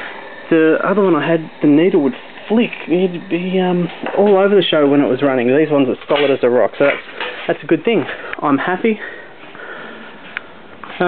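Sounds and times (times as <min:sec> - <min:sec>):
faint breathy hiss: 0:00.0 - 0:04.1.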